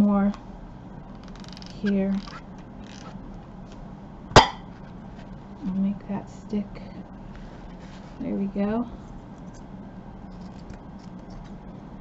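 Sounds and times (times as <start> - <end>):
sharp knock of hard object: 4.4 - 4.6.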